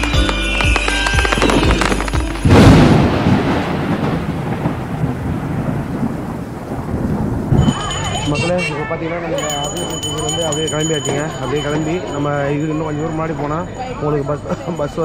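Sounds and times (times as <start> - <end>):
thunderclap: 1.3 - 8.3.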